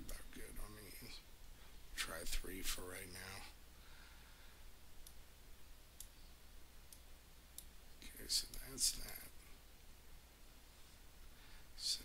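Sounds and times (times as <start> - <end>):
computer mouse clicks: 5.0 - 5.2, 6.0 - 6.2.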